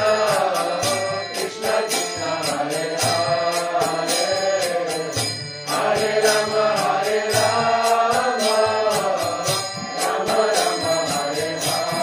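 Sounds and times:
ringing hand cymbals: 0.0 - 12.0
voices chanting to a melody: 0.0 - 12.0.

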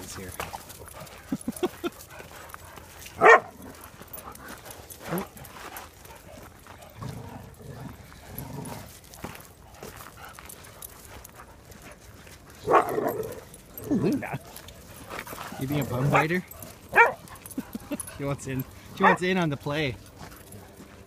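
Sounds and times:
dogs growling: 0.3 - 5.5, 6.1 - 10.6, 12.5 - 19.2
dog barking loudly: 3.2 - 3.7, 12.6 - 13.4, 15.9 - 17.2, 19.0 - 19.2.

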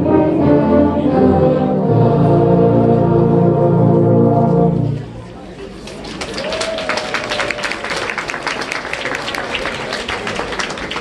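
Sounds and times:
tuba and euphonium choir chord: 0.0 - 5.1
applause: 5.8 - 11.0.

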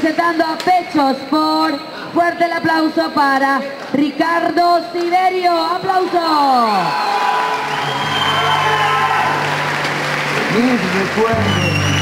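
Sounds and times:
audience applauding and cheering: 6.6 - 12.0
background music: 7.8 - 12.0
people shouting: 8.3 - 9.6.

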